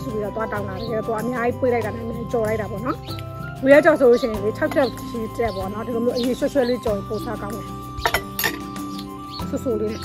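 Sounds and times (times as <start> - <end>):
dishes and metal spoon clinking: 8.0 - 8.7.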